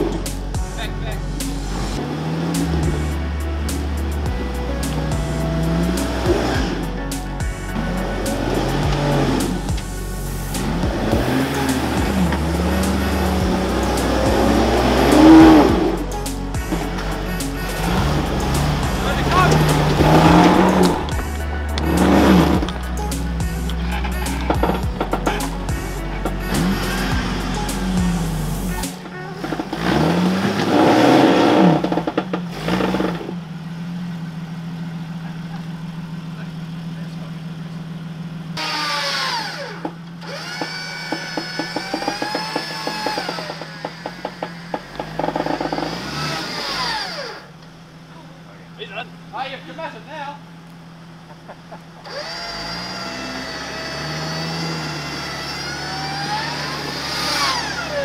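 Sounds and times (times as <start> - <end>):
engine revving under load: 0.0 - 49.3, 50.0 - 58.0
engine idling: 0.0 - 58.0.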